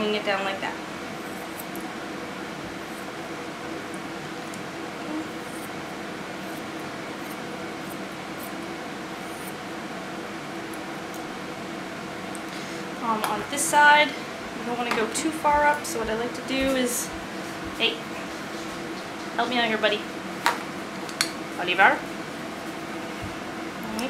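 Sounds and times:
steady background hum: 0:00.0 - 0:24.0
grooming shears snipping fur: 0:01.2 - 0:01.9.

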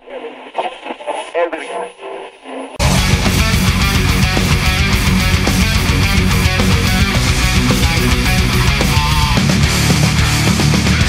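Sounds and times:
radio-like filtered voice: 0:00.0 - 0:04.2, 0:07.9 - 0:09.4
heavy metal band: 0:02.8 - 0:11.0.

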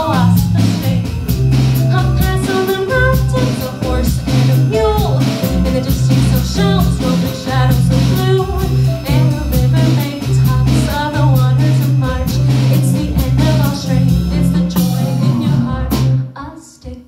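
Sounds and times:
low bass notes: 0:00.0 - 0:16.3
piano accompaniment: 0:00.0 - 0:16.4
woman singing bossa nova: 0:01.9 - 0:17.0.

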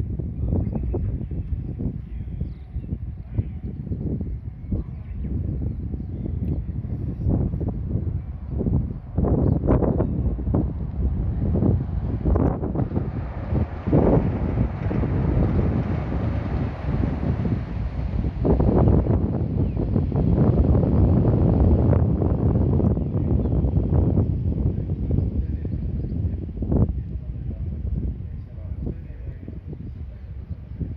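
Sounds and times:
wind buffeting microphone: 0:00.0 - 0:30.9.

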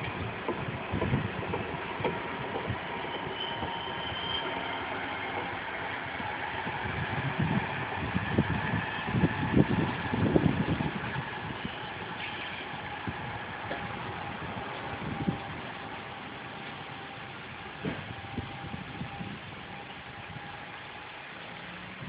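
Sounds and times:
tram running rumble: 0:00.0 - 0:22.0.

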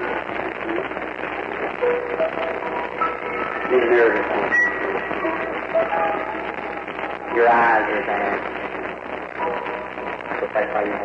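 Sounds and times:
recording hiss: 0:00.0 - 0:11.0
man speaking: 0:03.7 - 0:04.5, 0:07.3 - 0:08.5.

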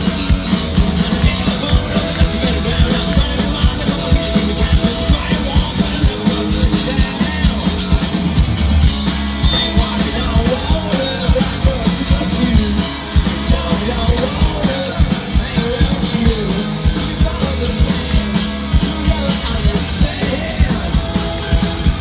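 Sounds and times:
live hard rock band: 0:00.0 - 0:22.0.

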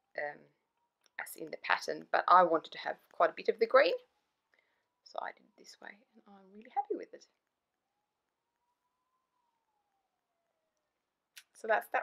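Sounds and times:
faint rising and falling tone: 0:04.0 - 0:11.6.

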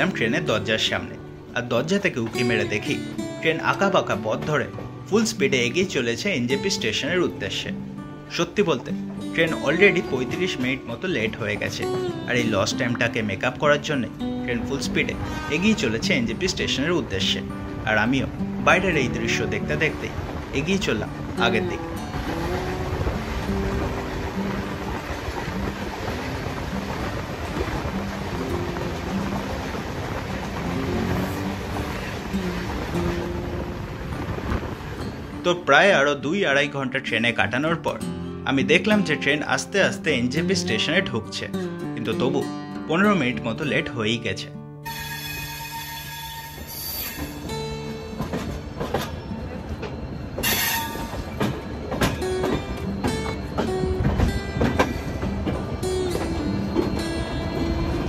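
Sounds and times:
passing train: 0:00.0 - 0:41.8, 0:44.8 - 0:58.0
background music: 0:00.0 - 0:58.0
train wheels rumbling on rails: 0:14.8 - 0:35.4, 0:44.9 - 0:58.0
train wheels clicking over rail joints: 0:46.5 - 0:57.8.

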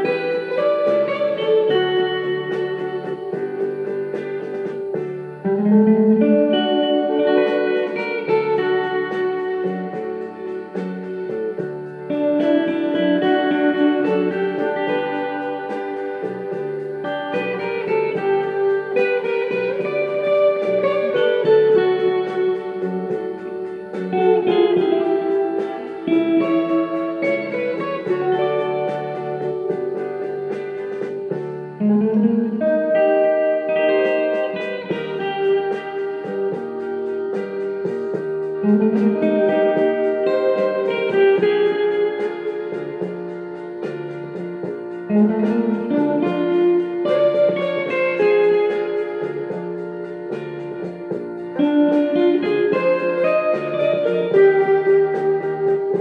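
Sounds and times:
backing music: 0:00.0 - 0:56.0
electric guitar lead: 0:00.0 - 0:56.0.

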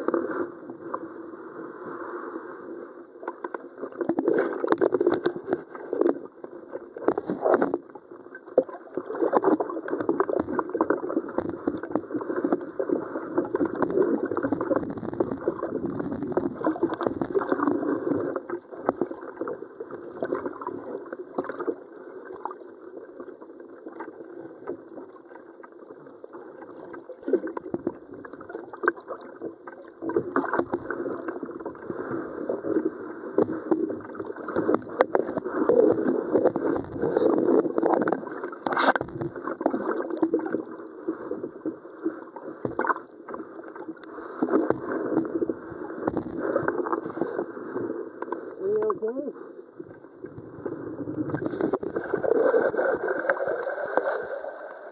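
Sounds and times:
muffled underwater river rushing: 0:00.0 - 0:54.9
small clicks and pops: 0:03.2 - 0:12.7, 0:13.3 - 0:19.5, 0:33.4 - 0:40.6, 0:42.6 - 0:45.4, 0:46.0 - 0:47.0, 0:48.2 - 0:48.9.

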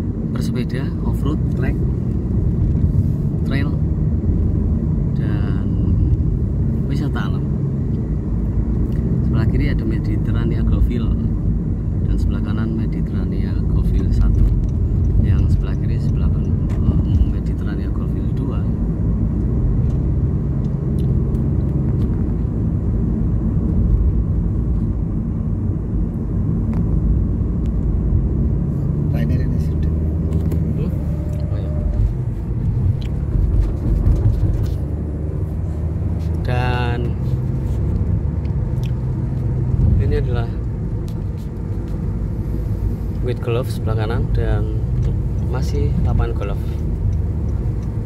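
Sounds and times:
car engine and tyres rumbling: 0:00.0 - 0:48.0.

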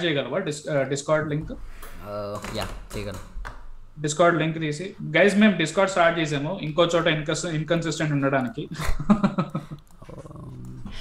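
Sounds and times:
men laughing: 0:08.7 - 0:10.1.

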